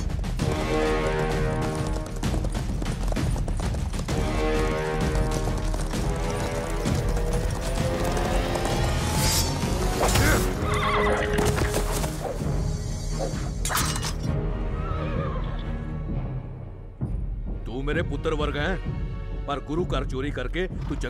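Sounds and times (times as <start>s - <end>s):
film music score: 0.0s - 21.0s
horse galloping: 0.4s - 9.8s
horse neighing: 10.4s - 11.5s.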